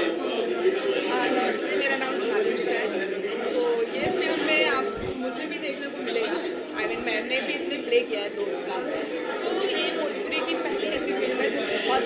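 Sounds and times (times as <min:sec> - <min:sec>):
several people talking: 0:00.0 - 0:12.0.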